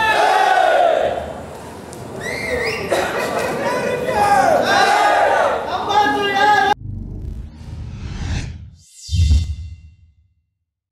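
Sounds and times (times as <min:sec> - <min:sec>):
crowd yelling: 0:00.0 - 0:01.5, 0:03.6 - 0:06.8.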